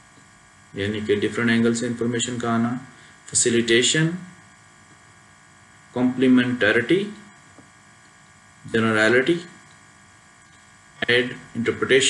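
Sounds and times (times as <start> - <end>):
faint electrical hum: 0.0 - 12.0
man speaking: 0.8 - 4.4, 6.0 - 7.3, 8.7 - 9.6, 11.0 - 12.0.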